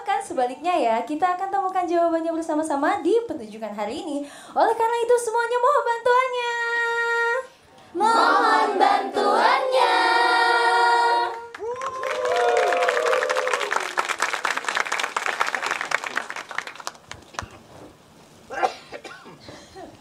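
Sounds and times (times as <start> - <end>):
women singing a long note: 8.0 - 11.6
audience clapping and cheering: 11.2 - 17.6.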